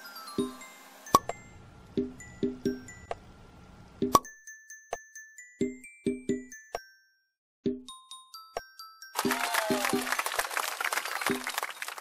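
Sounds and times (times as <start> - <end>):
hands clapping: 9.2 - 12.0.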